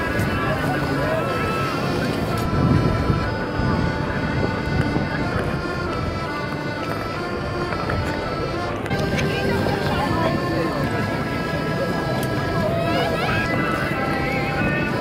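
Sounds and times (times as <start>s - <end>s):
accordion playing a waltz: 0.0s - 15.0s
crowd voices: 0.0s - 15.0s.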